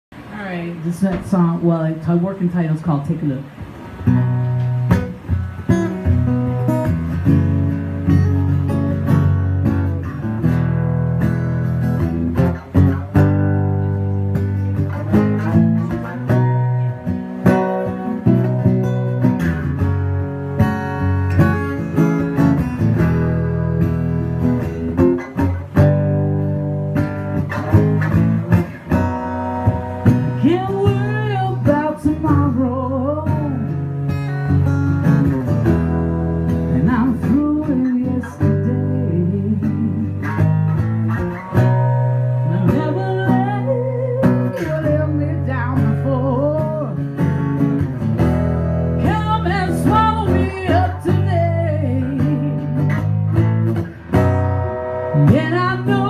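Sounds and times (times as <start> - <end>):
acoustic guitar strumming: 0.2 - 56.0
woman singing: 30.0 - 33.9, 36.7 - 40.5, 42.4 - 47.2, 49.0 - 52.8, 55.1 - 56.0.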